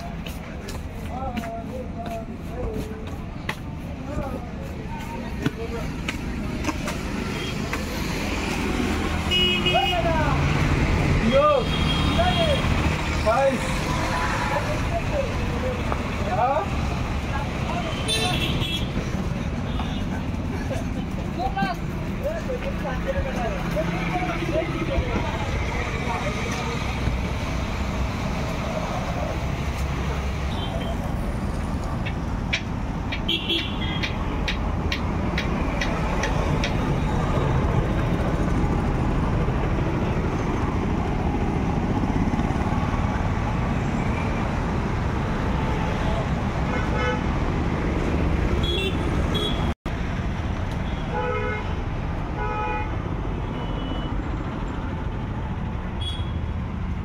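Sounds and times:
street traffic rumble: 0:00.0 - 0:57.0
vehicle horn toots: 0:09.3 - 0:10.0, 0:56.0 - 0:56.4.

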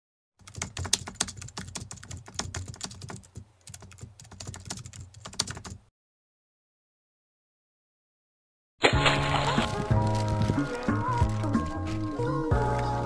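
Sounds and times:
typing on a keyboard: 0:00.4 - 0:05.8.

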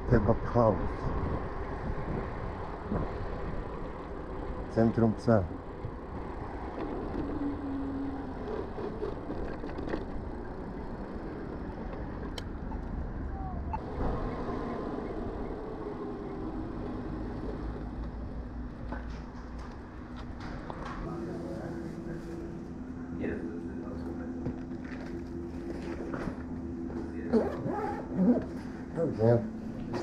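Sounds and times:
wind rush: 0:00.8 - 0:04.4.

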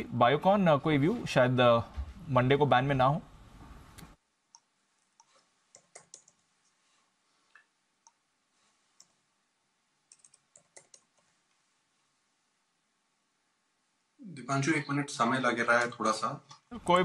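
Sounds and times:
keyboard and mouse clicks: 0:04.0 - 0:06.4, 0:10.1 - 0:11.3.

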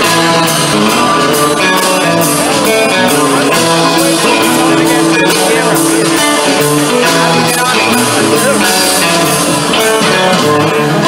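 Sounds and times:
live guitar band music: 0:00.0 - 0:11.0
steady bass line: 0:00.0 - 0:11.0.

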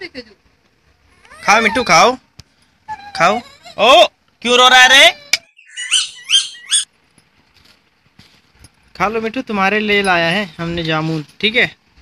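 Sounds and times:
parakeet calling: 0:05.4 - 0:06.9.

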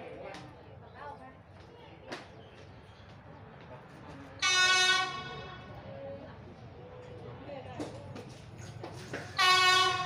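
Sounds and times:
train horn toot: 0:04.4 - 0:05.7, 0:09.3 - 0:10.0.

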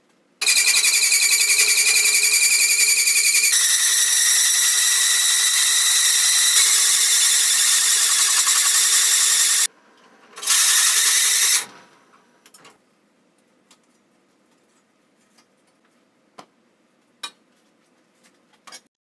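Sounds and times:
circle cutter screeching through metal: 0:00.4 - 0:09.7, 0:10.4 - 0:11.7.

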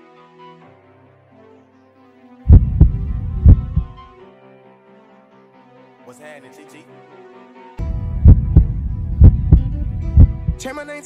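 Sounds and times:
heartbeat thumps: 0:02.5 - 0:04.0, 0:07.8 - 0:10.7
faint sustained backing: 0:02.5 - 0:04.1, 0:07.8 - 0:10.7.

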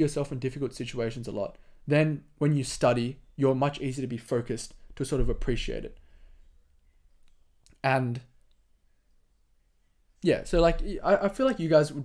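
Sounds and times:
man speaking: 0:00.0 - 0:06.0, 0:07.7 - 0:08.3, 0:10.2 - 0:12.0.

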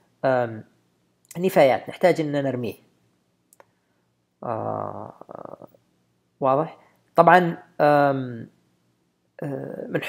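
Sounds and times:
man humming low: 0:04.4 - 0:05.8.

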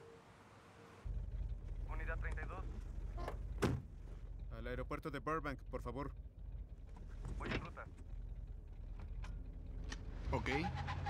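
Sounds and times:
car engine rumble and road noise: 0:00.2 - 0:11.0.

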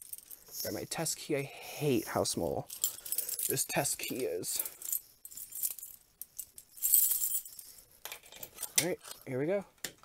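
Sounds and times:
keys jangling on a ring: 0:02.7 - 0:09.2.

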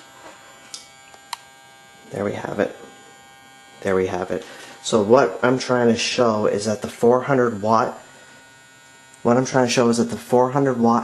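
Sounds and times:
grow light buzzing: 0:00.0 - 0:11.0.

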